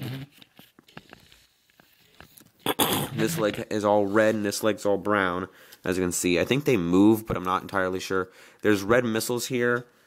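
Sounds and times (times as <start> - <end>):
person laughing: 3.0 - 3.6.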